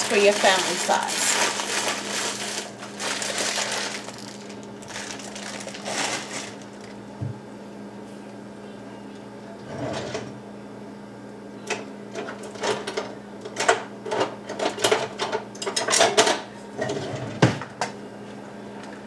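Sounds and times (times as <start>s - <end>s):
plastic bag crinkling: 0.0s - 7.0s.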